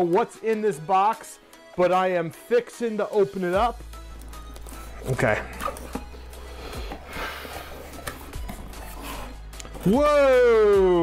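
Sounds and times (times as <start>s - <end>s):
background music: 0.0s - 11.0s
cardboard box lid scraping open: 4.5s - 9.9s.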